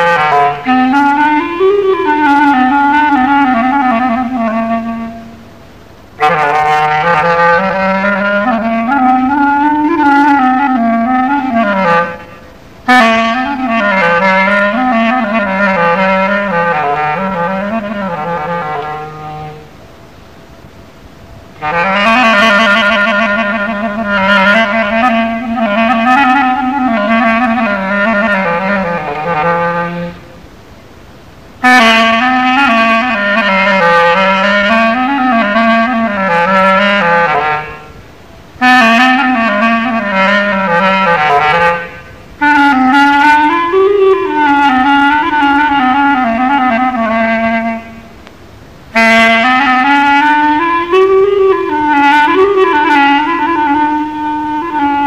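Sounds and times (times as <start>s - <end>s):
solo instrumental improvisation: 0.0s - 55.0s.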